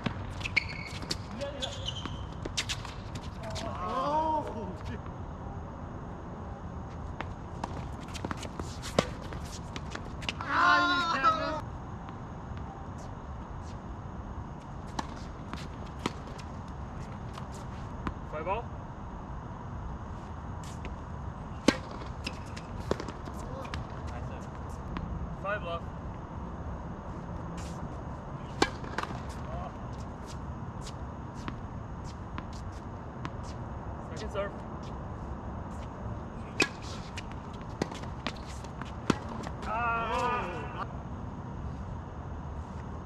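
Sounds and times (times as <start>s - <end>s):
tennis ball bouncing on hard court: 14.9s - 16.5s, 21.6s - 23.9s, 28.5s - 29.5s, 36.5s - 39.7s
tennis ball struck by rackets: 21.6s - 23.8s, 28.5s - 29.4s, 36.5s - 40.3s.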